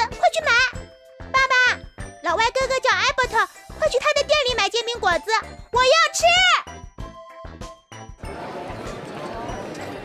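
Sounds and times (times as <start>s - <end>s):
girl speaking: 0.0s - 6.7s
light background music: 0.0s - 10.0s.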